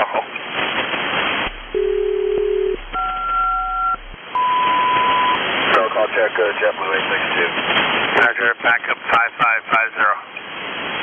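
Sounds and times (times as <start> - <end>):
radio hiss: 0.0 - 4.2, 5.4 - 10.4
steady low tone: 1.4 - 4.6
higher two-tone chord: 1.5 - 4.2.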